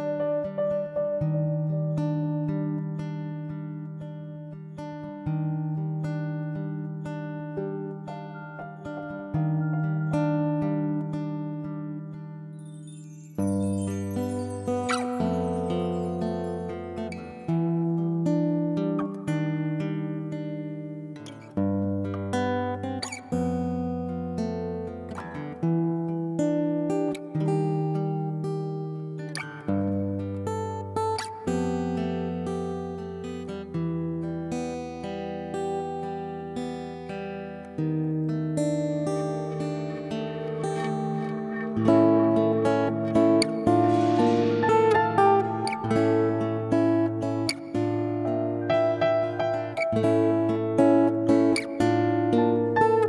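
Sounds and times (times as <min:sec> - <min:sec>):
plucked string instrument music: 0:00.0 - 0:36.5, 0:37.2 - 0:53.0.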